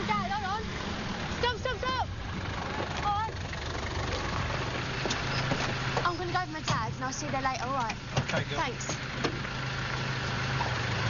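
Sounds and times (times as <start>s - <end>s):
taxi engine idling: 0.0s - 11.0s.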